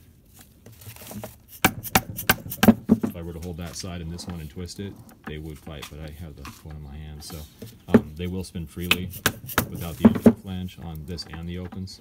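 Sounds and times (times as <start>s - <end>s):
plastic mallet knocking tube: 1.6s - 3.2s, 8.8s - 10.4s.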